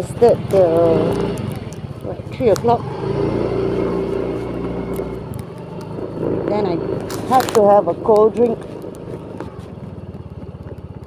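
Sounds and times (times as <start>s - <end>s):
motor scooter engine running: 0.0s - 11.0s.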